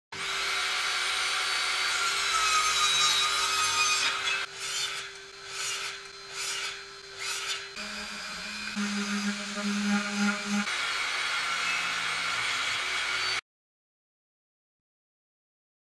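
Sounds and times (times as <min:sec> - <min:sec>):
mitre saw cutting: 0:00.1 - 0:13.4
table saw running: 0:00.1 - 0:13.4
palm sander humming: 0:04.2 - 0:13.4.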